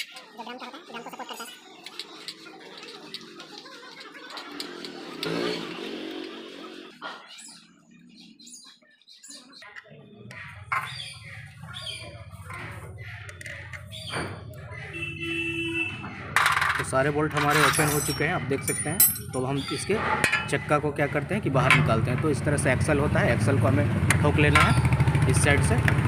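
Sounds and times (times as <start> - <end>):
birds chirping: 0.0 - 26.0
spanner clinking on metal: 16.4 - 20.6, 24.5 - 24.9.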